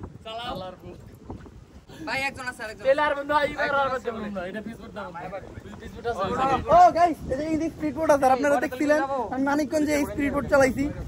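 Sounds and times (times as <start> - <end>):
men talking: 0.4 - 11.0.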